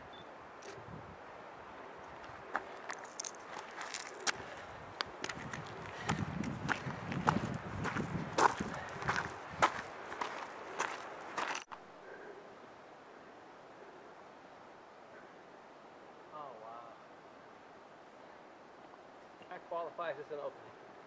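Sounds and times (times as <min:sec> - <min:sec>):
footsteps on trail: 0:02.0 - 0:11.8.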